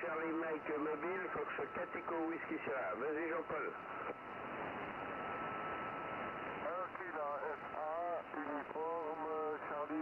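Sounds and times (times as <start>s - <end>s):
radio static hiss: 6.1s - 10.0s.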